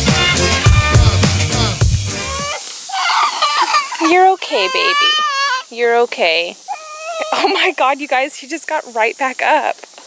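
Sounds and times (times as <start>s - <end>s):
background music with a beat: 0.0s - 2.4s
toddler whimpering cries: 0.7s - 1.2s, 2.2s - 5.7s, 6.7s - 7.6s.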